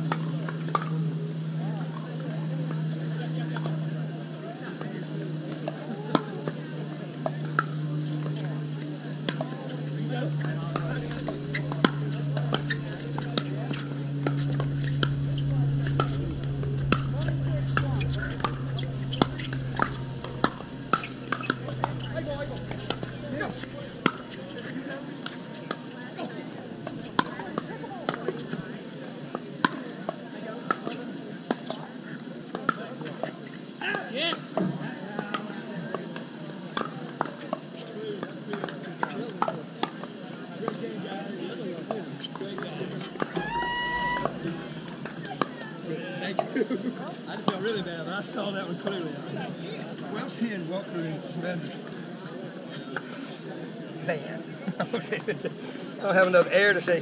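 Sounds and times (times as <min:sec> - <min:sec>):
low steady hum: 0:07.0 - 0:28.7.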